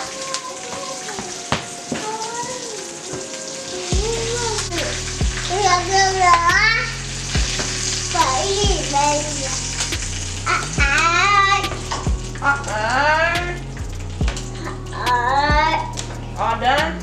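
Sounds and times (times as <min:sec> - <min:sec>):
background music with singing: 0:00.0 - 0:17.0
patties sizzling in a frying pan: 0:00.0 - 0:17.0.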